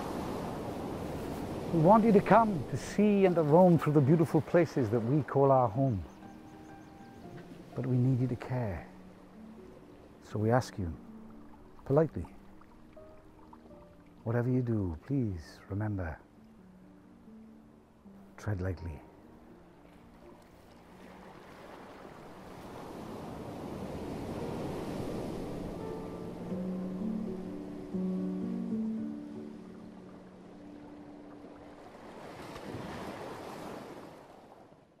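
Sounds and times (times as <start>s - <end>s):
sea surf washing in: 0.0s - 6.1s, 20.9s - 34.7s
soft background music: 0.0s - 32.7s.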